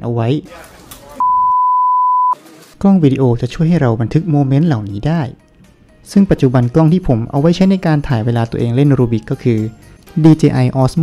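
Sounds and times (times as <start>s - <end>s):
electronic beep: 1.2s - 2.4s.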